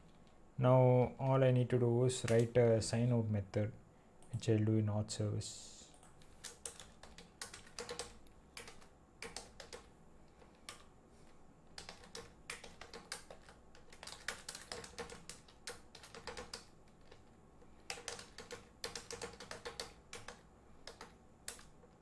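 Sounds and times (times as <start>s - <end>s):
typing on computer keyboard: 6.0s - 10.9s, 11.8s - 22.0s.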